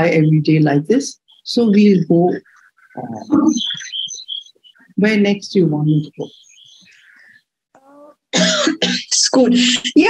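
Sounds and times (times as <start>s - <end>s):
person clearing throat: 8.4s - 9.0s.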